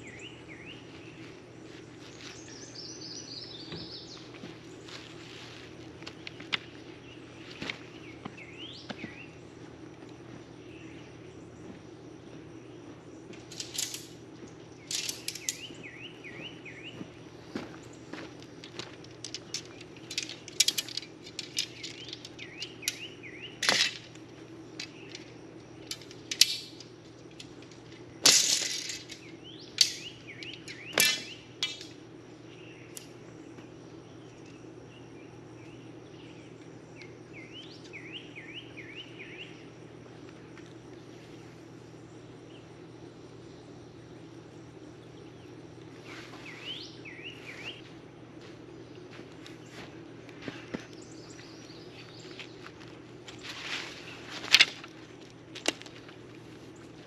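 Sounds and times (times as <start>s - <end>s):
clicks taps and rustles of shade: 3.6s - 10.7s, 11.6s - 32.0s, 47.6s - 57.0s.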